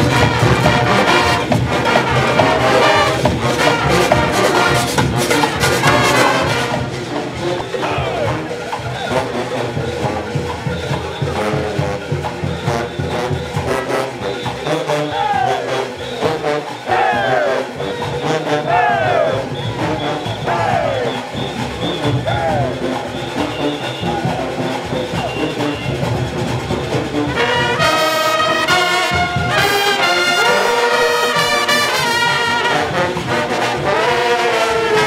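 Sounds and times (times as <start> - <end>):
brass horns: 0.0 - 35.0
drums beating quick rhythm: 0.0 - 35.0.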